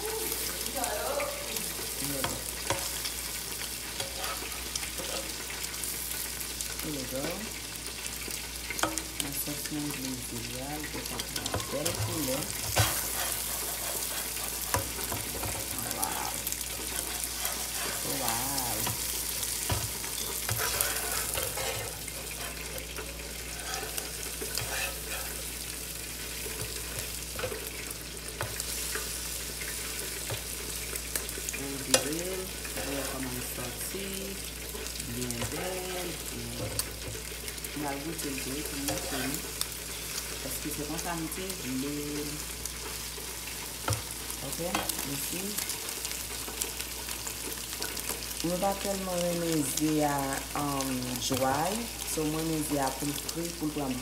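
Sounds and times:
eggs sizzling in a skillet: 0.0s - 54.0s
spatula scraping and tapping pan: 2.2s - 6.3s, 8.2s - 9.4s, 10.9s - 25.6s, 26.2s - 31.3s, 31.9s - 33.6s, 38.3s - 40.3s, 44.7s - 48.3s.

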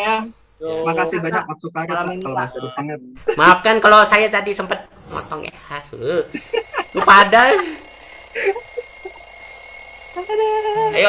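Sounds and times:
smartphone alarm high tone: 6.0s - 11.0s.

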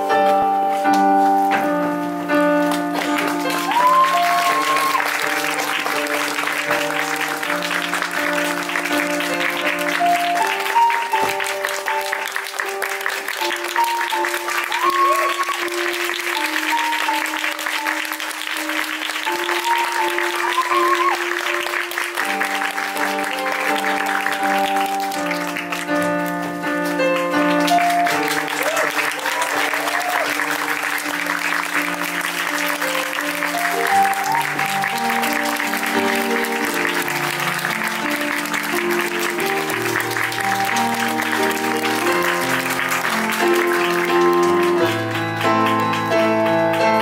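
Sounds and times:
instrumental music with held notes: 0.0s - 47.0s
audience applauding: 2.6s - 47.0s.

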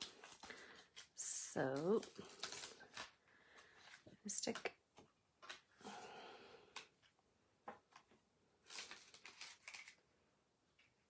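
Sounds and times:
adhesive sheet rustling and crackling: 0.0s - 4.1s, 8.6s - 10.0s.

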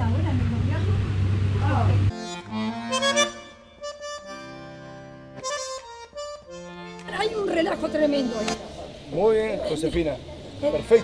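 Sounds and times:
accordion tune: 2.1s - 9.4s.

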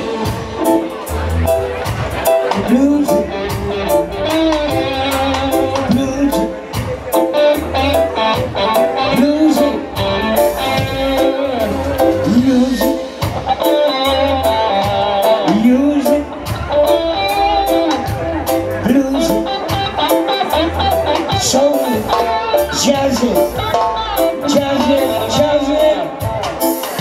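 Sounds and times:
bass line: 0.0s - 27.0s
electric guitar lead lines: 0.0s - 27.0s.

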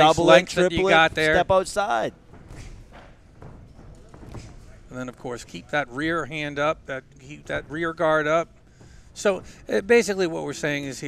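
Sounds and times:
faint hall ambience: 0.0s - 11.0s
soft low thuds: 0.0s - 11.0s.

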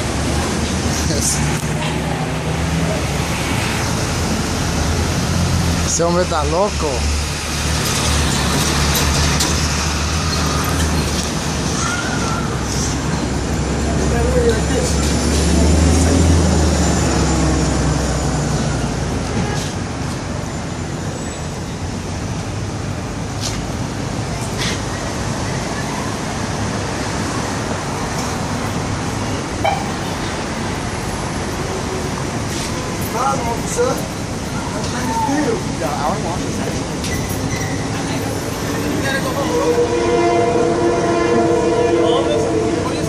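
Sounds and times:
large vehicle engine drone: 0.0s - 43.0s
street traffic noise: 0.0s - 43.0s.

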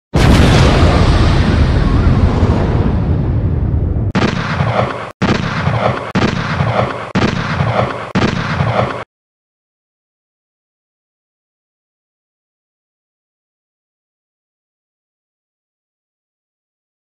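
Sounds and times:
explosion boom: 0.1s - 8.7s
gunshots with rumbling tail: 0.2s - 9.1s.

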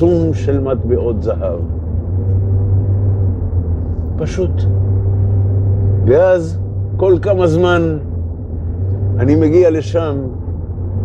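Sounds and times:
loud low drone: 0.0s - 11.0s.

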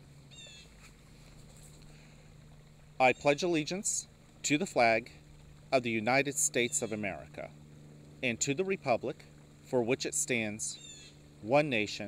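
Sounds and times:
steady low hum: 0.0s - 12.0s
bird chirp: 0.3s - 0.8s, 10.7s - 11.2s.

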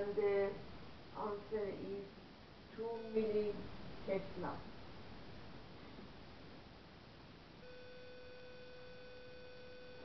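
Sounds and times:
faint steady pitched tone: 0.0s - 5.2s, 6.3s - 10.0s
low background hiss: 0.0s - 10.0s.

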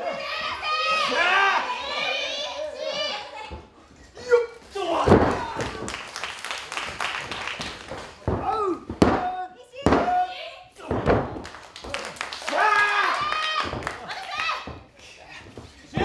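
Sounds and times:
wrestlers shouting and grunting: 0.0s - 6.0s, 8.2s - 16.0s.

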